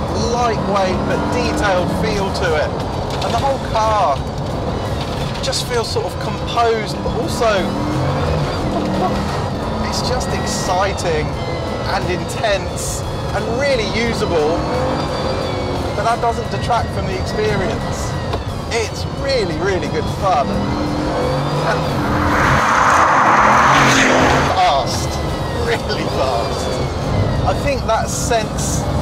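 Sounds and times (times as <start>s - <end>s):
car engine running: 0.0s - 29.0s
road noise: 0.0s - 29.0s
car engine passing by: 19.8s - 27.4s.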